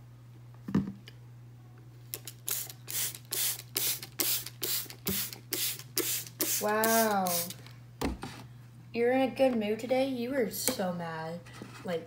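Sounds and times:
spray bottle spritzing: 0:02.2 - 0:07.6.

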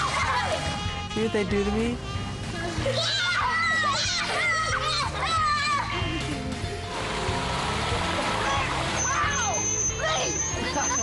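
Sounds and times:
water splashing in a pool: 0:00.0 - 0:00.9, 0:06.9 - 0:09.8
people laughing: 0:00.0 - 0:01.2, 0:04.8 - 0:09.0, 0:10.5 - 0:11.0
background music: 0:00.0 - 0:11.0
thin high whine: 0:08.4 - 0:11.0.

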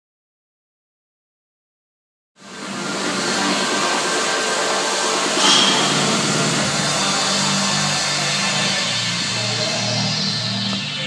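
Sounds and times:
sharp hit: 0:05.3 - 0:07.9
bass line: 0:05.4 - 0:09.6.

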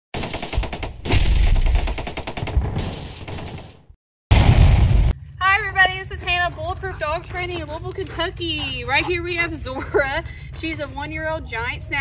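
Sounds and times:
short blast: 0:04.3 - 0:05.1.

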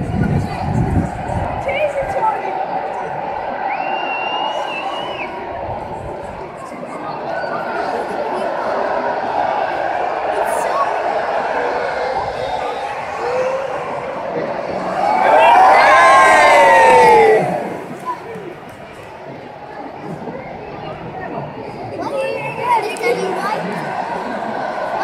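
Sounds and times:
crowd cheering and whooping: 0:00.0 - 0:18.4, 0:22.0 - 0:25.0
stadium crowd chattering: 0:00.0 - 0:25.0.

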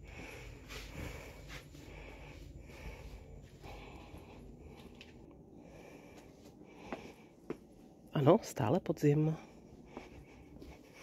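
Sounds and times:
faint footsteps: 0:00.0 - 0:08.0, 0:09.4 - 0:11.0
low steady rumble: 0:00.0 - 0:11.0.

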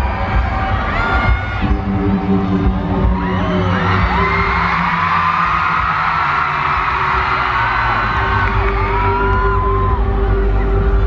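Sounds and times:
crowd whooping and cheering: 0:00.0 - 0:11.0
live concert music with heavy bass: 0:00.0 - 0:11.0.

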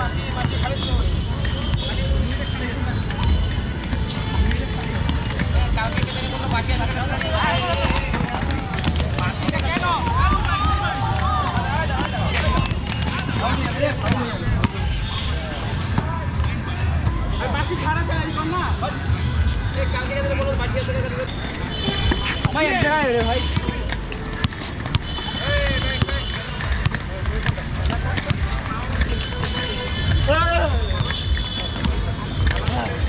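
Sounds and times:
players calling and shouting: 0:00.0 - 0:33.0.

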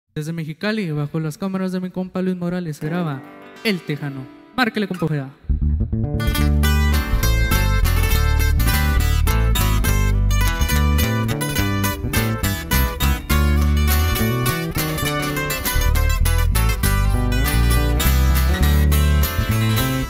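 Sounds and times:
twelve-string acoustic guitar: 0:02.8 - 0:20.0
electric bass line: 0:05.4 - 0:20.0.

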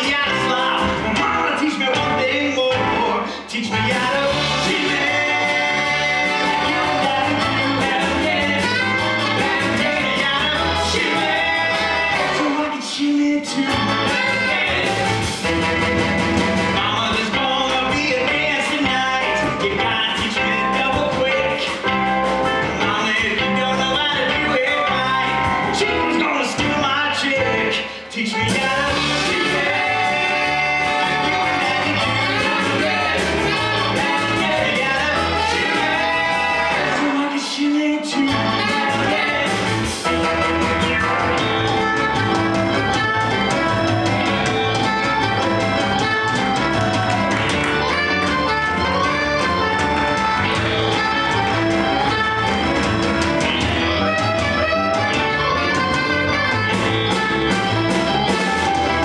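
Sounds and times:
man singing: 0:00.0 - 0:15.3, 0:16.7 - 0:22.0, 0:22.7 - 0:40.2, 0:42.9 - 0:48.5
live rock band with guitar: 0:00.0 - 0:59.0
steady bass rhythm: 0:03.8 - 0:12.4, 0:13.6 - 0:27.6, 0:28.5 - 0:37.2, 0:38.3 - 0:59.0.

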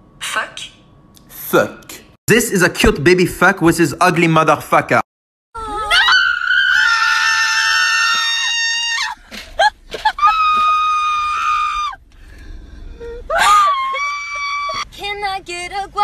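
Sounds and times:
people screaming: 0:05.6 - 0:09.2, 0:10.0 - 0:12.0, 0:13.3 - 0:14.8.

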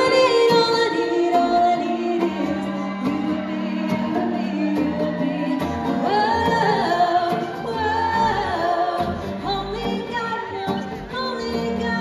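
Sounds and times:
live band with guitars: 0:00.0 - 0:12.0.

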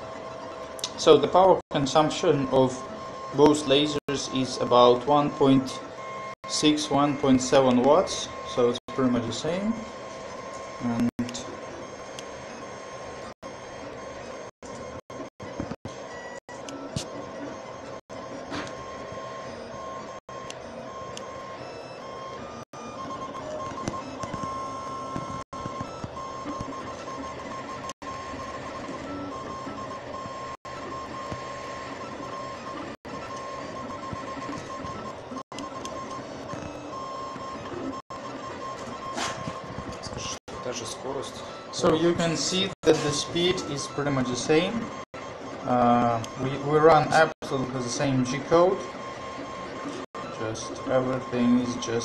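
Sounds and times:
laser engraver motors and fans whining: 0:00.0 - 0:52.0.

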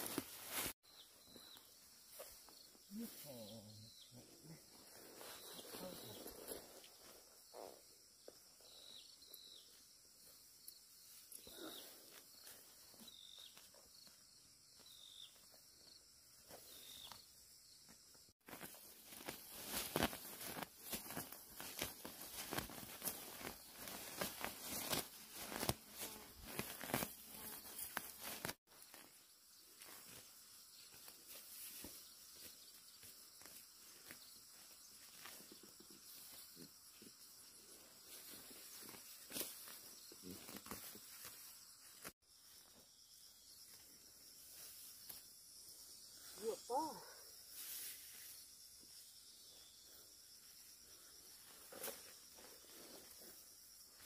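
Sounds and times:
leaves and stems rustling: 0:00.0 - 0:03.6, 0:04.8 - 0:07.3, 0:18.4 - 0:37.0, 0:37.6 - 0:42.6
weeds tearing from soil: 0:18.5 - 0:29.0.

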